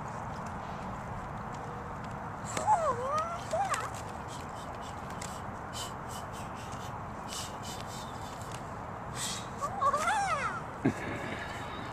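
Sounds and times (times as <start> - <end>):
outdoor background noise: 0.0 - 11.9
nunchucks swishing through air: 2.4 - 10.6
child's voice: 2.5 - 4.0, 9.6 - 10.7.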